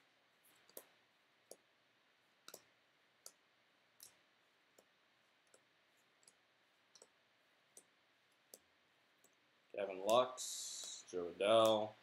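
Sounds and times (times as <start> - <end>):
faint clicks of flicked cards: 0.0 - 12.0.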